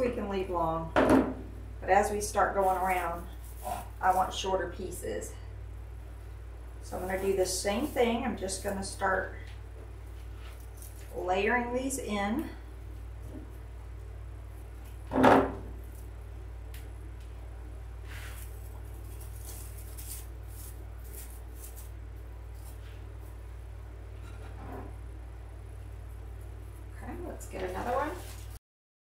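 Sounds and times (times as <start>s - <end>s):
artificial pine branches rustling: 1.8s - 24.3s, 25.8s - 28.6s.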